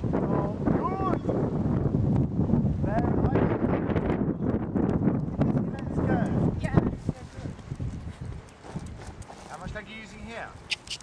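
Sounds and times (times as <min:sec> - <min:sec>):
horse hoofbeats on soft ground: 0:04.9 - 0:11.0.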